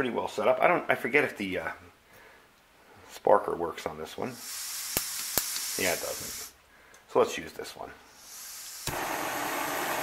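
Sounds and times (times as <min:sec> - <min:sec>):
gas hissing from valve: 0:04.3 - 0:06.6, 0:08.1 - 0:10.0
stove flame rushing: 0:04.4 - 0:06.5, 0:08.2 - 0:10.0
sharp pop of ignition: 0:08.8 - 0:09.3.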